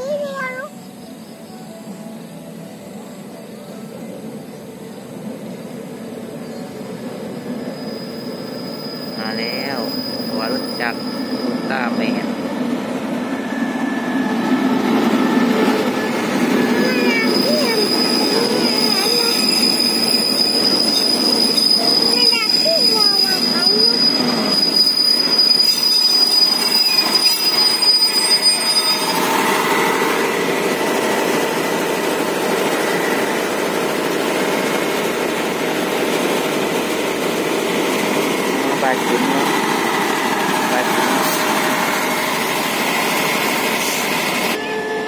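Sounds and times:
high-pitched train squeal: 0:00.0 - 0:45.0
train rumbling past: 0:00.0 - 0:45.0.

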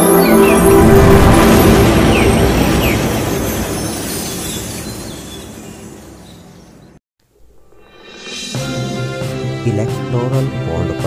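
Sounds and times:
rumbling whoosh: 0:00.2 - 0:05.6.

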